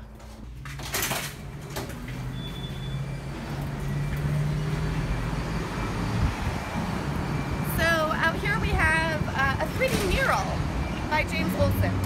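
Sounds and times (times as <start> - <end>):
road noise: 0.0 - 12.0
vehicle engine humming: 0.0 - 12.0
door clunking open: 0.2 - 4.5.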